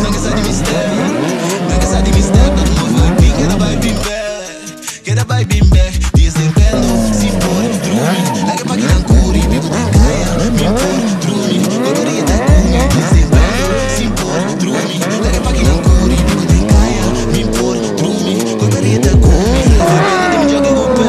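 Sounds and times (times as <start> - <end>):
bass-heavy music: 0.0 - 21.0
motorcycle engines revving: 0.0 - 21.0
tyres squealing on asphalt: 6.8 - 21.0.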